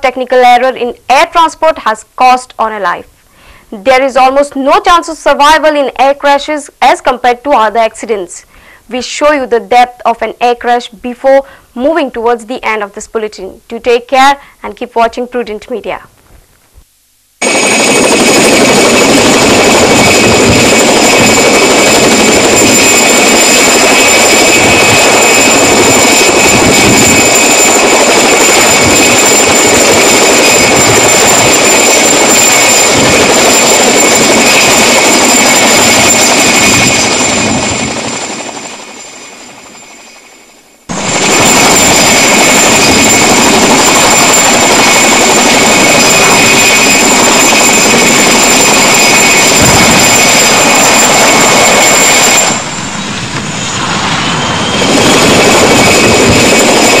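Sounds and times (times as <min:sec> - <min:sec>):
helicopter turbine engine roaring: 0:17.4 - 0:57.0.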